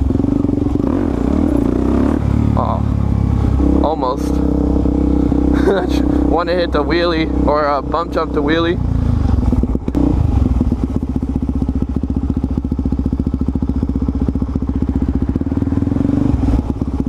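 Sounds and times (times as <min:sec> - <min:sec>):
motorcycle engine running: 0:00.0 - 0:17.0.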